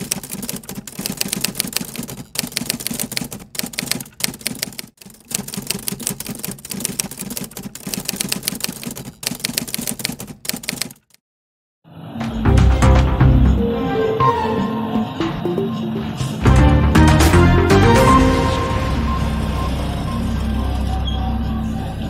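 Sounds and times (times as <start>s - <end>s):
typewriter keystrokes: 0.0s - 11.2s.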